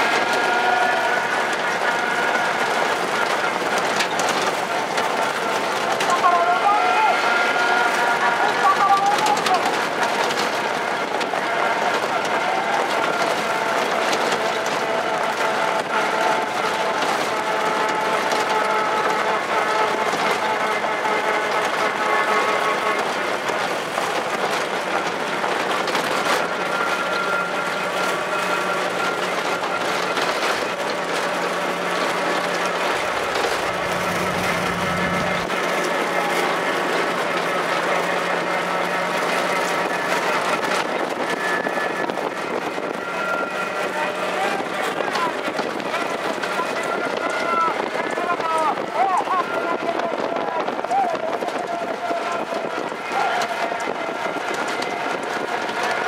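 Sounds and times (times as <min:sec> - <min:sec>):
vehicle driving at speed: 0:09.4 - 0:48.1
wind on microphone: 0:39.8 - 0:56.0.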